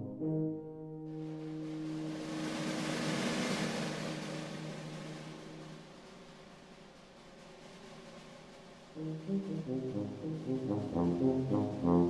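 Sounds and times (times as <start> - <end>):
soft hissing percussion wash: 1.0 - 12.0.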